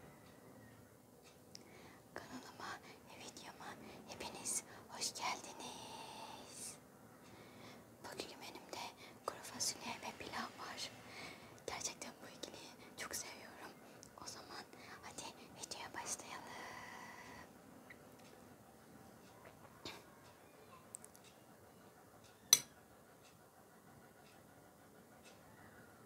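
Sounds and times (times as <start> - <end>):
woman whispering: 2.1 - 6.8, 8.0 - 11.0, 11.6 - 17.5.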